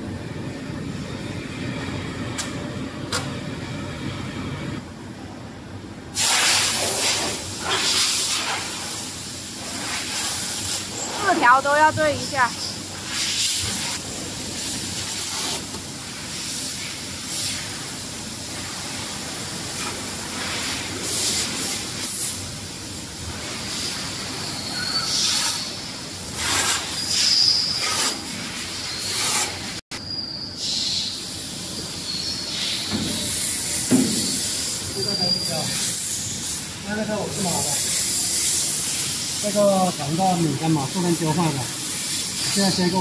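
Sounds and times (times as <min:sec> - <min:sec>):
steady machine hiss: 0:06.1 - 0:29.8, 0:30.5 - 0:43.0
short high squeaks: 0:34.2 - 0:36.2.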